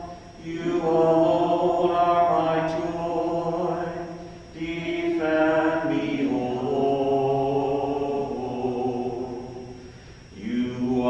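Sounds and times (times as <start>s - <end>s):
slow chant sung in held notes: 0.0s - 11.0s
steady low tone: 0.0s - 11.0s.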